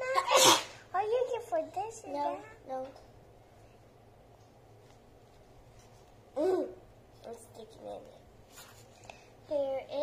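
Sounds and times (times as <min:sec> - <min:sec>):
girl sneezing: 0:00.0 - 0:00.9
child talking: 0:00.9 - 0:03.0, 0:06.4 - 0:08.2, 0:09.5 - 0:10.0.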